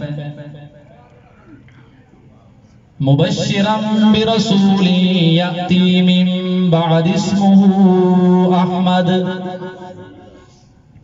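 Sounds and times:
man chanting through loudspeaker: 0:00.0 - 0:01.0, 0:03.0 - 0:10.9.

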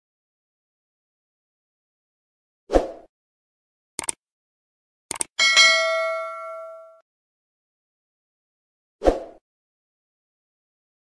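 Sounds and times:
mouse clicks: 0:04.0 - 0:04.2, 0:05.1 - 0:05.3
bright bell ding: 0:05.4 - 0:07.0.

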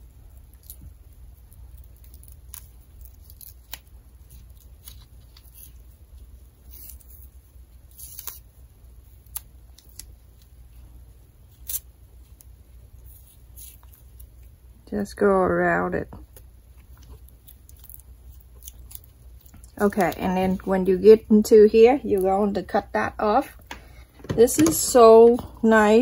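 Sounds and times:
tape crackling under fingertips: 0:00.0 - 0:15.2, 0:16.0 - 0:26.0.

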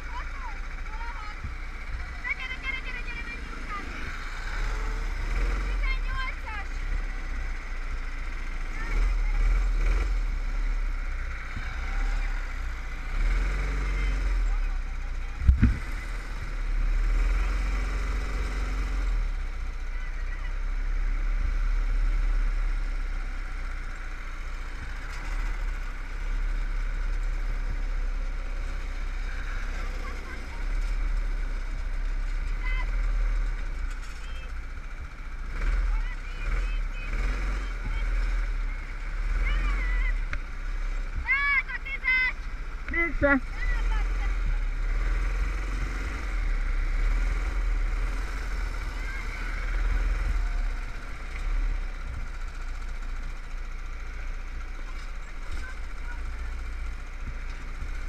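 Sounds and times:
go-kart engine racing: 0:00.0 - 0:58.0
wind rumble on microphone: 0:15.4 - 0:15.9.

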